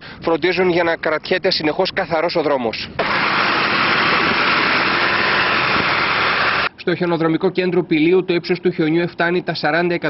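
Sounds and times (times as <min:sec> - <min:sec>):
strong even hiss: 0:03.0 - 0:06.7
truck engine running: 0:03.0 - 0:06.7.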